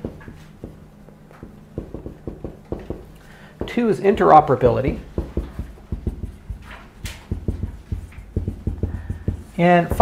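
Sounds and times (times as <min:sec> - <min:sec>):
marker knocking on whiteboard: 0:00.0 - 0:00.8, 0:01.4 - 0:10.0
marker scratchy strokes: 0:05.5 - 0:10.0.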